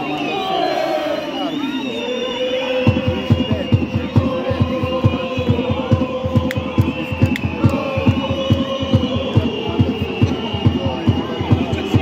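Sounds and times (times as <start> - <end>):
football supporters chanting: 0.0 - 12.0
bass drum beating: 2.8 - 12.0.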